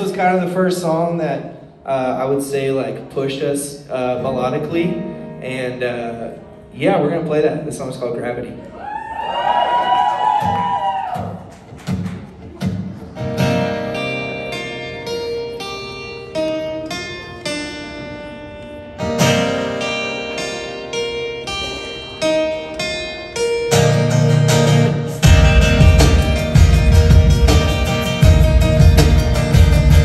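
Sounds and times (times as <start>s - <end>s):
acoustic guitars playing: 0.0s - 8.7s, 10.2s - 30.0s
audience whoops: 8.7s - 11.5s.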